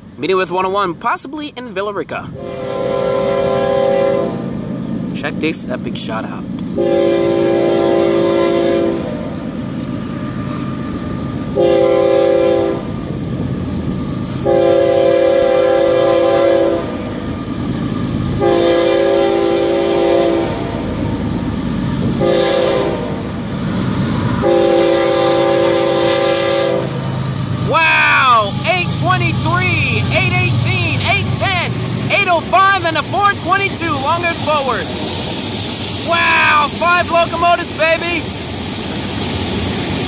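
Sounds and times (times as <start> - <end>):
locomotive engines passing: 0.0 - 40.0
train rumble: 0.0 - 40.0
locomotive air horn blasts: 2.4 - 4.5, 6.8 - 9.3, 11.6 - 12.9, 14.3 - 17.0, 18.4 - 20.6, 22.2 - 23.2, 24.4 - 27.0.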